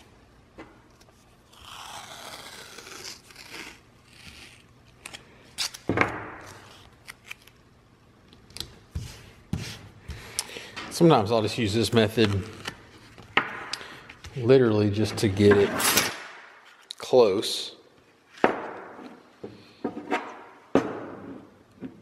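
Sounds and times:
tape ripping: 0:01.5 - 0:07.6.

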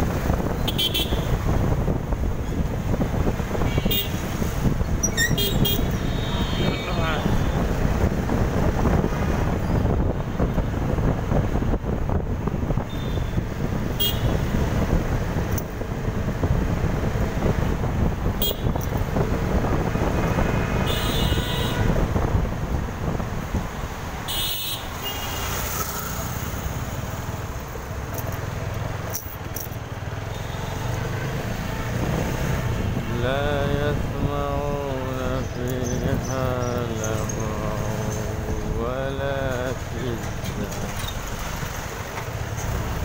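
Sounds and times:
road and engine rumble: 0:00.0 - 0:43.0
car horn toots: 0:00.7 - 0:01.3, 0:03.6 - 0:04.2, 0:05.2 - 0:07.4, 0:12.9 - 0:14.4, 0:18.4 - 0:18.9, 0:20.8 - 0:22.0, 0:24.3 - 0:25.4.

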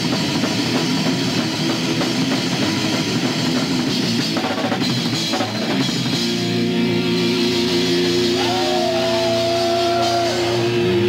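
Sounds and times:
rapid drumming: 0:00.0 - 0:06.7, 0:07.3 - 0:11.0
heavy guitar: 0:00.0 - 0:11.0.

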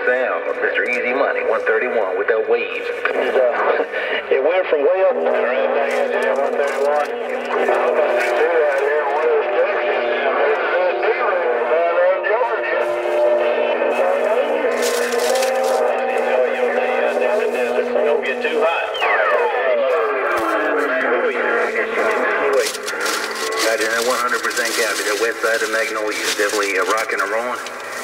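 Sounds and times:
garbled radio voices: 0:00.0 - 0:28.0
steady radio tones: 0:00.0 - 0:28.0.

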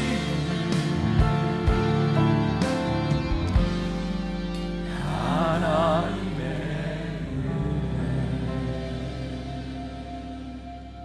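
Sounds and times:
person singing with vibrato: 0:00.0 - 0:01.8, 0:04.8 - 0:10.2
soft instrumental accompaniment: 0:00.0 - 0:11.0.

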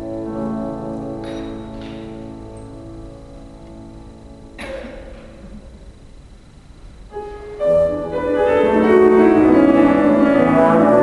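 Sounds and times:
piano: 0:00.0 - 0:06.2, 0:07.0 - 0:11.0.

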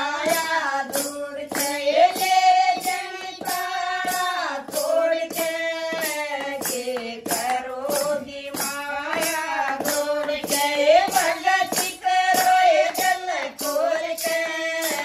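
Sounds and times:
hand claps: 0:00.0 - 0:15.0
women singing folk song: 0:00.0 - 0:15.0
wooden clappers with jingles: 0:00.0 - 0:15.0.

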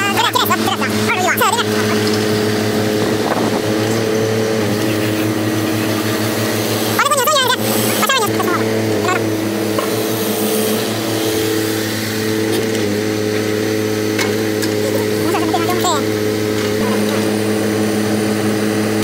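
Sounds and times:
diesel engine droning: 0:00.0 - 0:19.0
short wavering voice: 0:14.8 - 0:16.1, 0:16.8 - 0:17.5.

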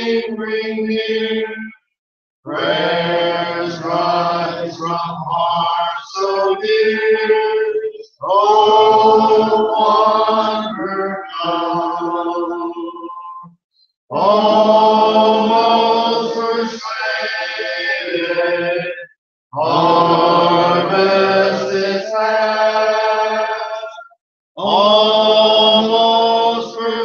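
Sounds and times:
congregation singing a hymn: 0:00.0 - 0:01.6, 0:02.5 - 0:13.0, 0:14.1 - 0:19.0, 0:19.6 - 0:24.0, 0:24.6 - 0:27.0.

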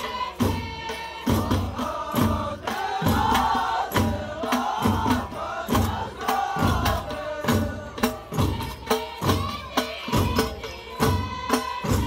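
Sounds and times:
men chanting in chorus: 0:00.0 - 0:11.6.

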